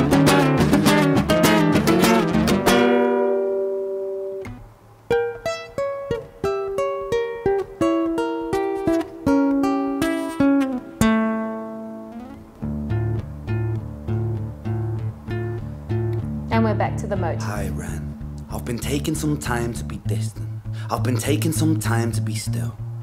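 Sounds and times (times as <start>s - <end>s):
acoustic guitar playing: 0.0s - 23.0s.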